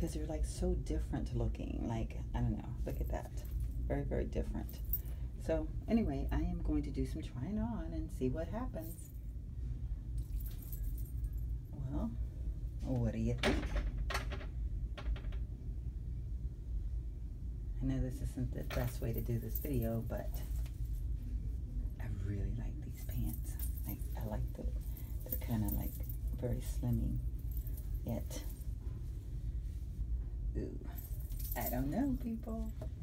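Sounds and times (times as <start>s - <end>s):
steady low rumble: 0.0s - 33.0s
faint metallic jingling: 10.2s - 11.5s, 23.0s - 28.8s, 30.9s - 32.8s.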